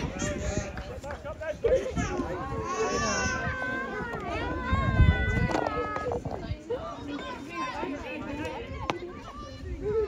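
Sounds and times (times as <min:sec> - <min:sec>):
children calling out: 0:01.7 - 0:10.0.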